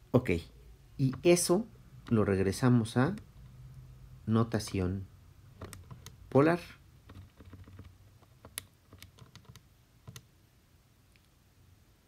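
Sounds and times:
keys clicking: 7.0 - 10.3.

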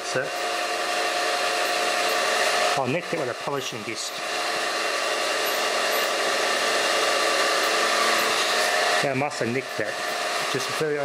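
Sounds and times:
polishing tool motor whine: 0.0 - 11.0.

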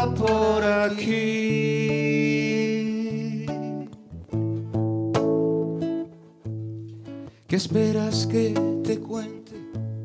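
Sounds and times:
acoustic guitar ballad: 0.0 - 10.0.

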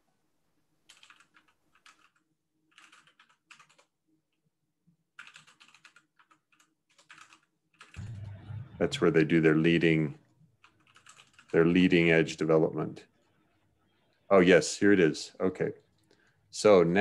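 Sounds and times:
typing on computer keyboard: 0.9 - 4.0, 5.2 - 8.0, 10.6 - 11.5
man speaking: 8.6 - 10.2, 11.6 - 13.1, 14.3 - 15.8, 16.5 - 17.0.

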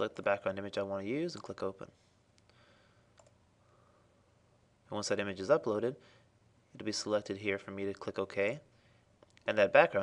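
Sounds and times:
faint computer mouse clicks: 2.3 - 3.4.

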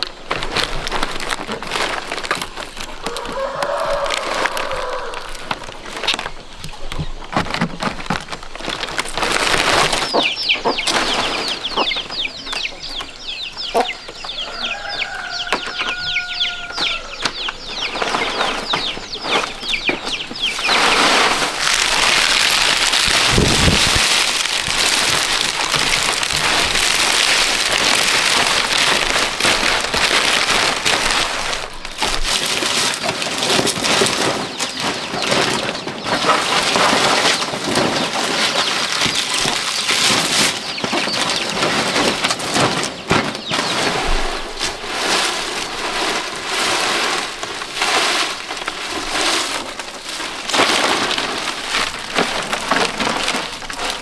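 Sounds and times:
chickens chirping: 0.0 - 54.0
dry rustle of leaves: 0.0 - 54.0
rooster crowing: 3.0 - 5.6, 14.3 - 17.4.

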